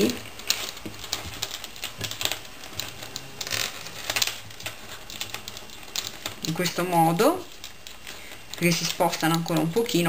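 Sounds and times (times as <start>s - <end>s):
beads and metal tubes rattling: 0.0s - 10.0s.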